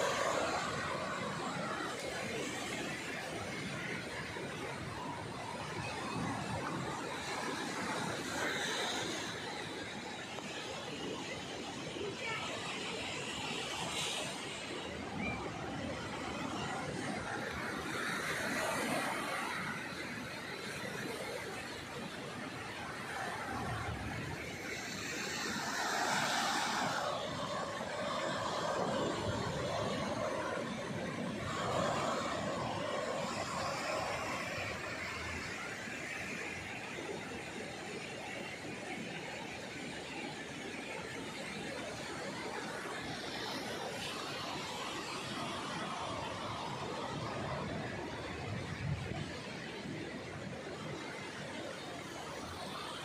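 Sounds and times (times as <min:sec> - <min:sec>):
sea waves breaking on shore: 0:12.6 - 0:53.0.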